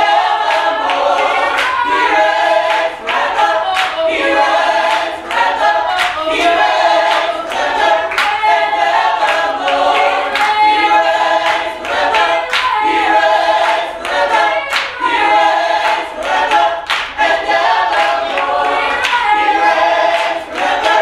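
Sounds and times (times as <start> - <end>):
vocal group singing a cappella: 0.0 - 21.0
hand claps: 0.2 - 21.0.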